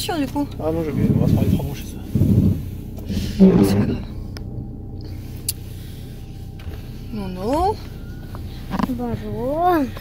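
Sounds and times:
car engine running: 0.0s - 10.0s.

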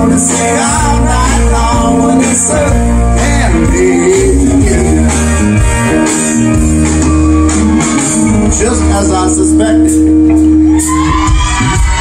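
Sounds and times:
live band guitar chord: 0.0s - 12.0s
crowd whooping and cheering: 5.9s - 9.1s, 10.2s - 12.0s.

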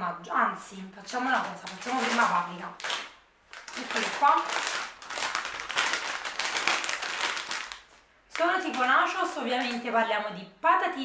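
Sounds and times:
snack bag crackling: 1.3s - 8.0s.

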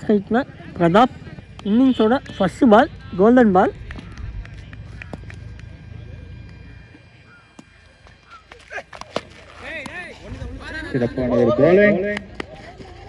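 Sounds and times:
distant players shouting: 1.4s - 10.6s
cricket bat striking ball: 3.9s - 5.8s.

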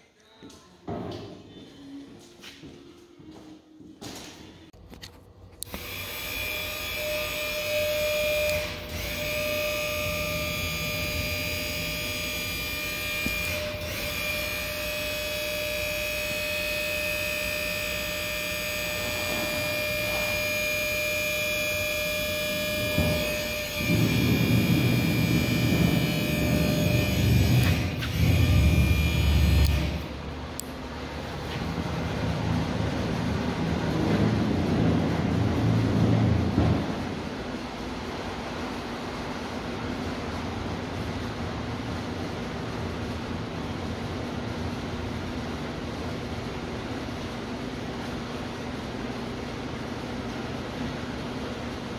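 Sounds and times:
hydraulic pump motor whining: 5.0s - 37.3s
low motor rumble: 22.5s - 51.9s.

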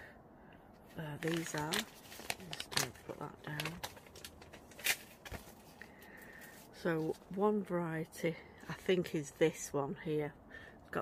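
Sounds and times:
paper packet rustling: 0.9s - 6.7s.

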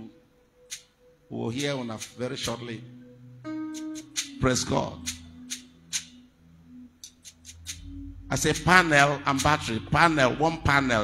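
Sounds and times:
church keyboard low notes: 0.0s - 11.0s
low hum: 7.6s - 11.0s.

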